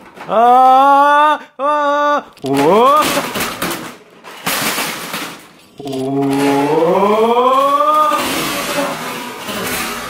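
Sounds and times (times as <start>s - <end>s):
plastic toy trucks clattering: 0.0s - 0.8s, 2.2s - 10.0s.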